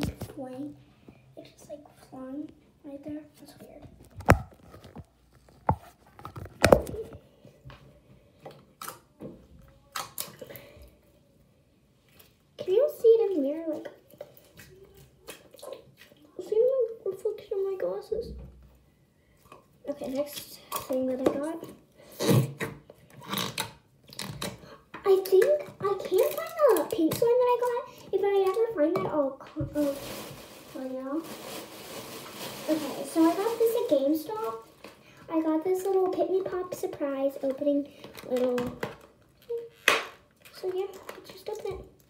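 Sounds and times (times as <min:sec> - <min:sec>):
rustling: 0:29.4 - 0:35.0.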